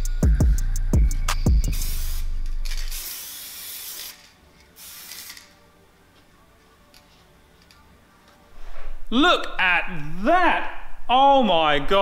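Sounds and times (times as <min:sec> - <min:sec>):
spray paint can hissing: 0:01.6 - 0:05.6.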